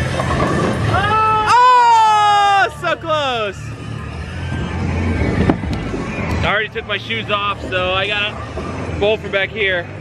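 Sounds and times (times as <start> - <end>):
rumble of rolling bowling balls: 0.0 - 10.0.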